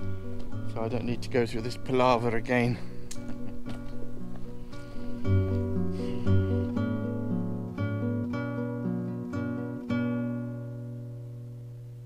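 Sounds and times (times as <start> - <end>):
acoustic guitar picking: 0.0 - 12.0.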